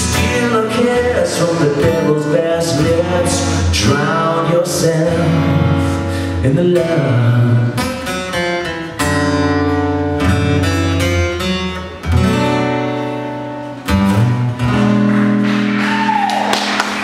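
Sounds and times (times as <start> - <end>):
acoustic guitar strumming: 0.0 - 16.2
audience applause: 14.7 - 17.0.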